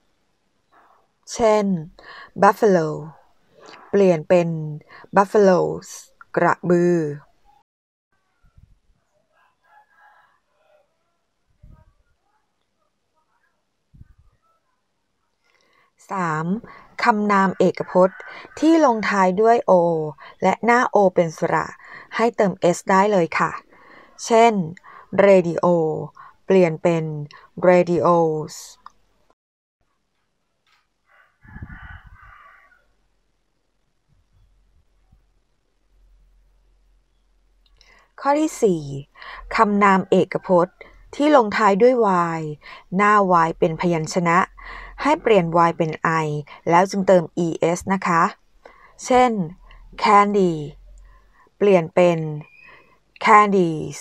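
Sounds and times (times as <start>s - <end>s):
faint distant bird call: 52.4s - 53.1s.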